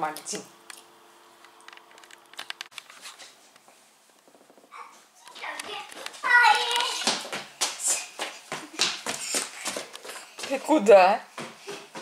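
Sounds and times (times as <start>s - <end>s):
child's running footsteps: 4.8s - 12.0s.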